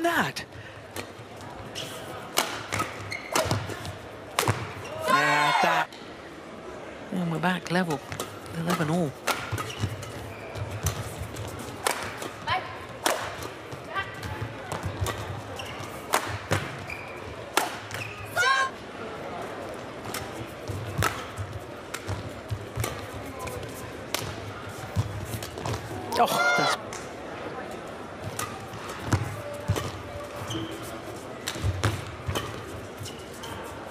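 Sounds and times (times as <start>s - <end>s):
arena background noise: 0.0s - 33.9s
shoes squeaking on floor: 1.6s - 3.9s, 9.5s - 11.7s, 15.4s - 18.4s, 30.1s - 31.2s, 31.8s - 33.9s
racket striking shuttlecock: 2.3s - 4.8s, 8.1s - 10.2s.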